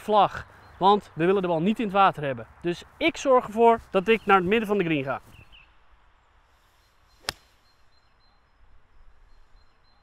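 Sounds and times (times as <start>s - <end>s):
golf club striking ball: 7.2s - 7.5s.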